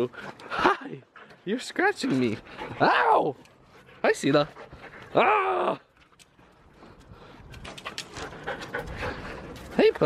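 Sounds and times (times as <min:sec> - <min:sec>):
dogs panting: 0:00.0 - 0:05.2, 0:05.9 - 0:10.0.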